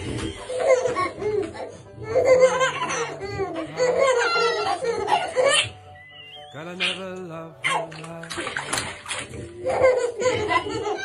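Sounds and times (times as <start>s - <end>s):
person speaking: 6.6s - 8.8s
baby splashing bath water: 7.6s - 11.0s.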